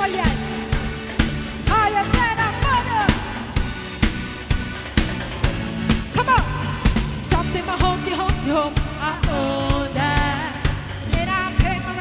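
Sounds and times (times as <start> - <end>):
drum kit playing a steady beat: 0.0 - 12.0
sustained backing music: 0.0 - 12.0.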